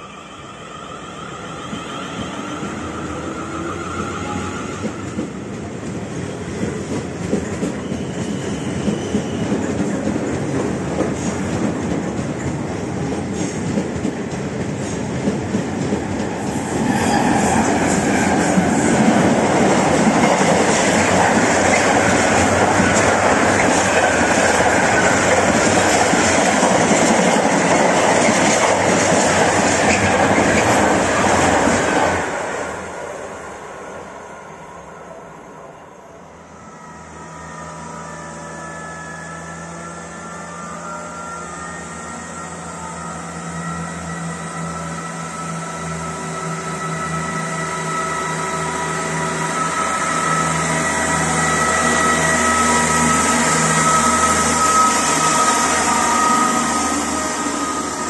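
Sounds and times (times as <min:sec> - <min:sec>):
freight train rumble and clatter: 0:02.3 - 0:33.4
train motor whine: 0:36.6 - 0:58.0.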